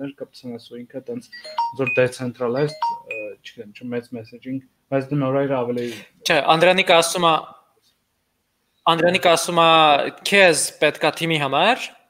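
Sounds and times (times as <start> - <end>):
men talking over video call: 0.0 - 7.9, 8.8 - 12.0
two-note electronic chime: 1.4 - 3.3.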